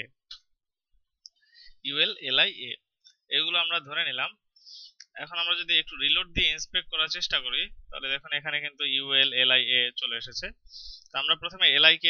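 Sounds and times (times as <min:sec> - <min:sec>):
man speaking: 0:01.8 - 0:12.0.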